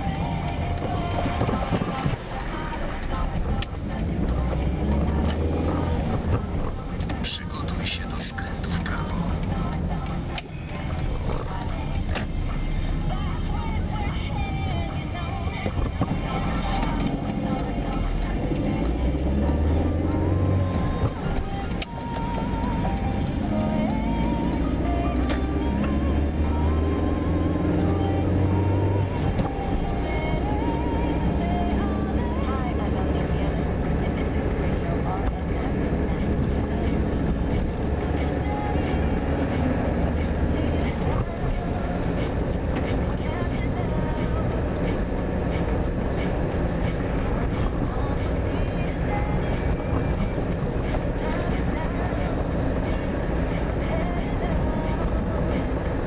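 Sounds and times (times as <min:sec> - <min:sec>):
car engine and road noise: 0:00.0 - 0:56.0
music with vocals in a car: 0:00.0 - 0:56.0.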